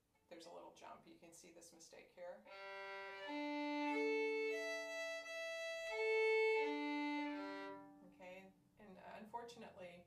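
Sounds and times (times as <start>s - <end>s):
violin bowed across open strings: 2.5s - 8.1s.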